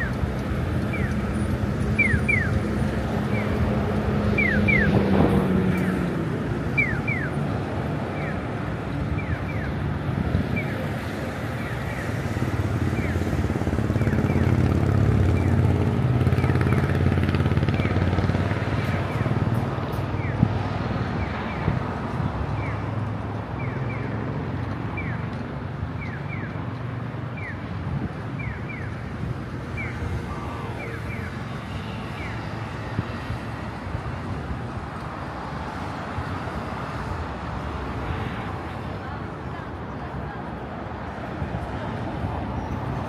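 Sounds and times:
pedestrian crossing signal chirping: 0.0 - 34.0
road traffic rumble: 0.0 - 43.0.

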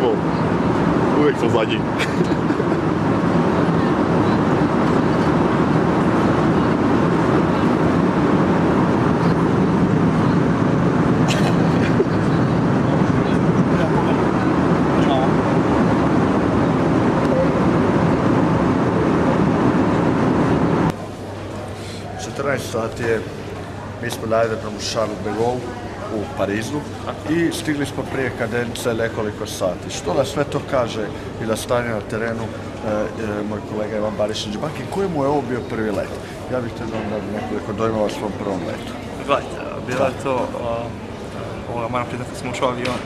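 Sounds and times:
airliner cabin drone: 0.0 - 43.0.

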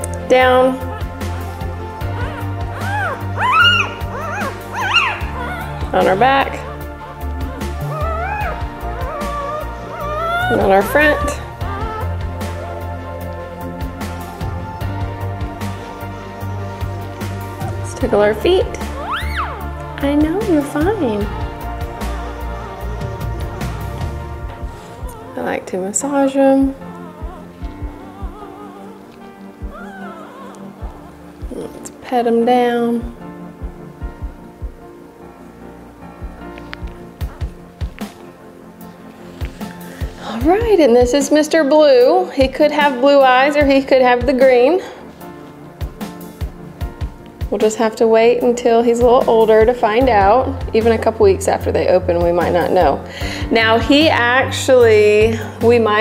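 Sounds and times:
background music: 0.0 - 56.0
puppy whimpering: 0.6 - 12.9, 18.8 - 19.8, 26.8 - 31.8
puppy high squeals: 0.8 - 5.9, 7.5 - 12.2, 19.0 - 19.7.

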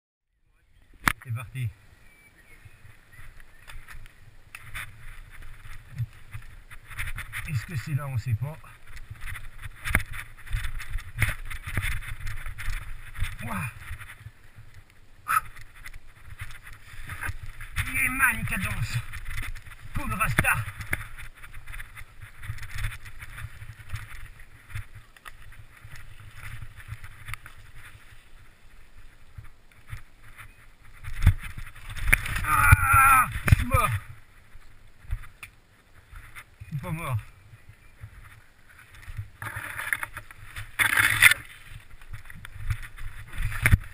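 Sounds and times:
wind on microphone: 2.3 - 43.9
bike tyres rumbling on rocks: 2.6 - 43.9
knocks and rattles of bike: 2.8 - 36.6, 37.5 - 43.9.

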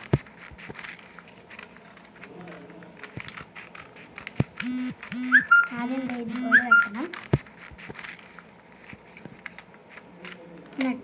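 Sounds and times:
hooting vocal notes: 4.7 - 7.0.

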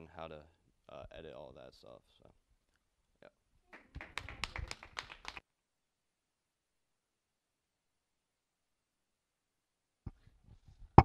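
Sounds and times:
people clapping: 3.7 - 5.4.

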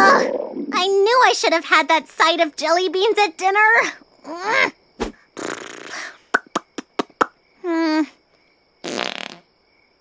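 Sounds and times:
cartoon fart sound effect: 5.0 - 7.3, 8.8 - 9.4.

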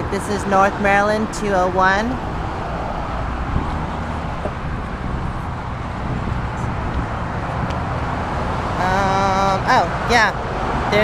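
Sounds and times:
cars driving past: 0.0 - 11.0.

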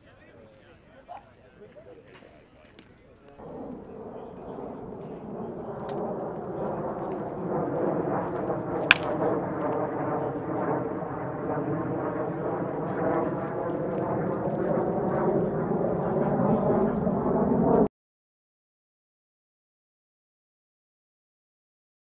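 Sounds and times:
airplane roar overhead: 0.0 - 17.9
bat hitting baseball: 8.3 - 9.4.

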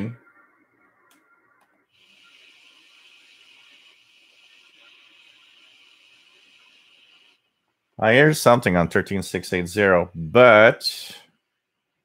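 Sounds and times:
radio static hiss: 0.0 - 8.8
weak radio signal: 0.0 - 9.0.

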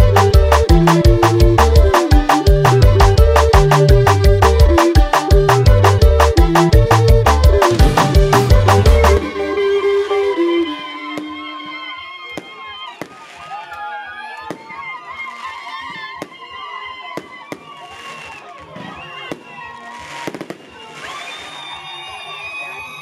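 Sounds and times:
crowd shouting and chatter: 0.0 - 23.0
fireworks banging: 12.4 - 13.8, 17.2 - 21.7.

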